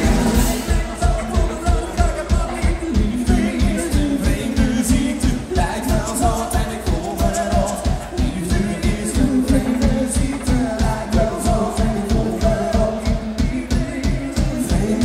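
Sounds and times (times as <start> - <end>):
bass: 0.0 - 15.0
keyboards: 0.0 - 15.0
man singing lead: 0.0 - 15.0
steady drum beat: 0.0 - 15.0.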